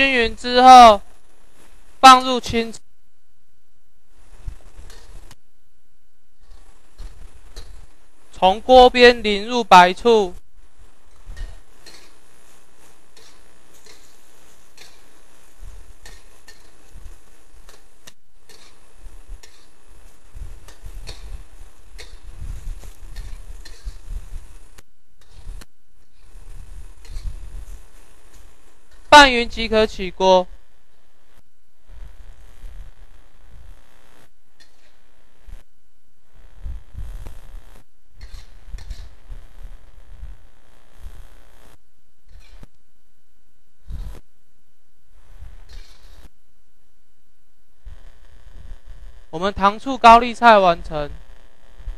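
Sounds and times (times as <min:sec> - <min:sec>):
food sizzling: 0:04.1 - 0:05.4, 0:06.4 - 0:30.4, 0:38.2 - 0:40.0
metal spatula scraping a wok: 0:11.3 - 0:12.3, 0:13.1 - 0:15.2, 0:16.0 - 0:16.9, 0:17.7 - 0:19.8, 0:23.1 - 0:24.1, 0:27.0 - 0:27.4, 0:38.2 - 0:39.2, 0:42.3 - 0:42.7, 0:45.7 - 0:46.2.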